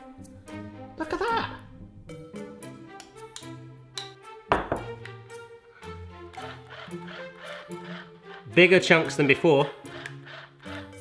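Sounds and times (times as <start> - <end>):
background music with quick short notes: 0.0 - 11.0.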